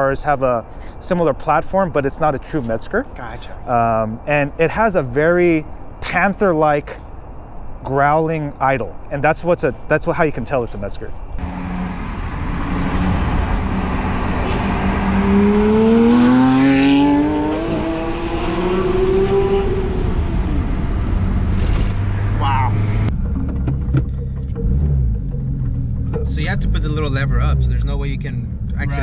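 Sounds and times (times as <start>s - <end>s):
car engine accelerating: 11.4s - 29.0s
low engine hum: 19.4s - 29.0s.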